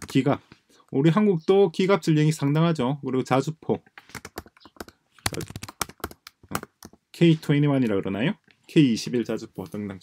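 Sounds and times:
typing on a computer keyboard: 4.1s - 7.0s.

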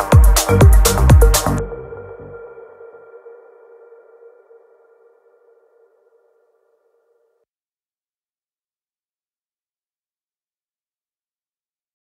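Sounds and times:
held electronic chord: 0.0s - 5.9s.

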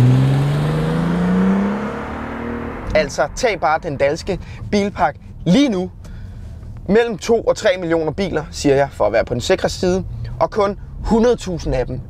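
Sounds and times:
car engine accelerating past: 0.0s - 4.5s.

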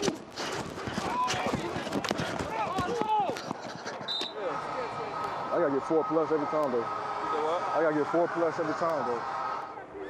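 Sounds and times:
players shouting and grunting: 0.7s - 10.0s.

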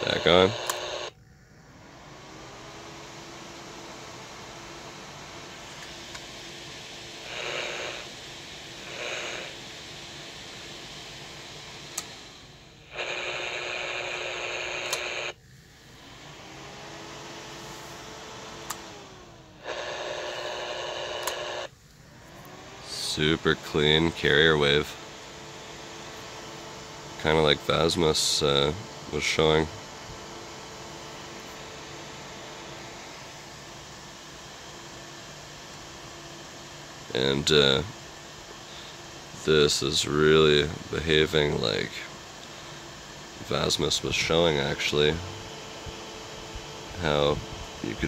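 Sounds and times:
radio static: 0.0s - 1.1s, 7.2s - 8.1s, 8.8s - 9.6s, 12.9s - 15.4s, 19.6s - 21.7s, 22.9s - 25.1s, 27.2s - 29.8s, 43.4s - 48.0s
harsh buzz: 0.0s - 48.0s
sharp clicks: 21.2s - 21.4s.

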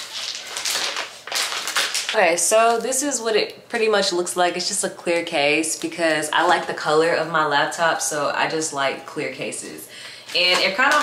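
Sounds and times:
plastic bag crinkling: 0.0s - 3.0s, 10.3s - 11.0s.

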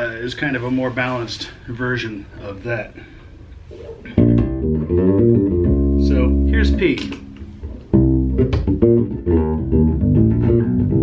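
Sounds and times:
electric bass plucked notes: 4.1s - 11.0s.

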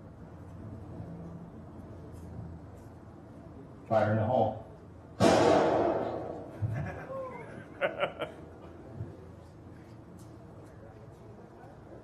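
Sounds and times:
plastic bottle bursting with bang: 5.2s - 6.4s.

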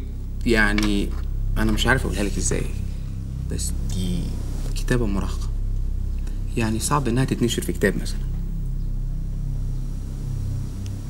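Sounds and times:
low rumbling drone score: 0.0s - 11.0s.

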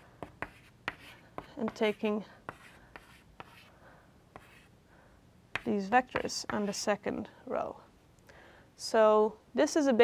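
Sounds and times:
chalk tapping on blackboard: 0.2s - 3.7s, 4.3s - 4.7s, 5.5s - 6.8s.

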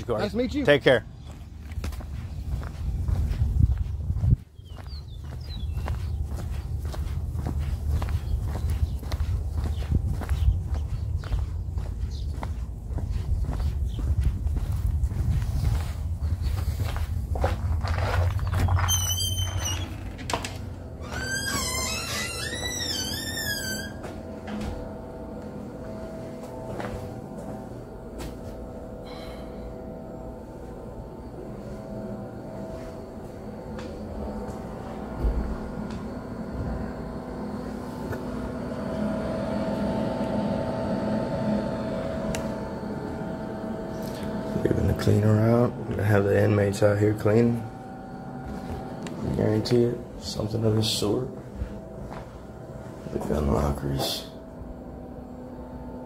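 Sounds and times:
footsteps outdoors: 0.0s - 29.0s, 29.8s - 55.8s
steady indoor hum: 0.0s - 56.0s
wind rumbling on microphone: 1.1s - 20.0s.

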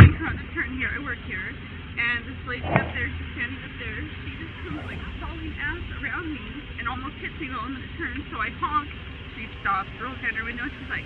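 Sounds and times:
steady low rumble: 0.0s - 11.0s
woman talking: 0.0s - 11.0s.

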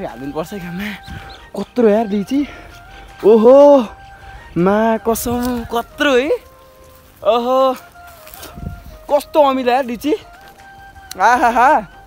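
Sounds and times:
chicken calling: 0.0s - 11.9s.

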